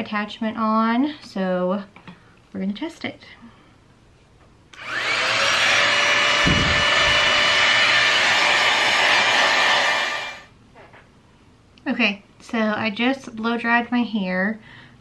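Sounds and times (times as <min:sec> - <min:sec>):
hot air styler whine and airflow: 0:04.8 - 0:10.5.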